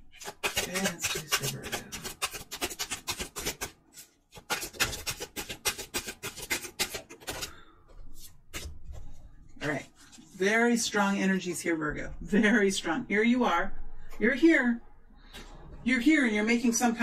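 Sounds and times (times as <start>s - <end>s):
cards being shuffled by hand: 0.0s - 10.3s.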